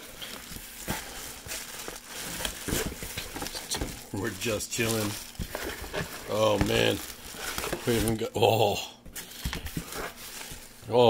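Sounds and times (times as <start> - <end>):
plastic bags rustling: 0.0 - 11.0.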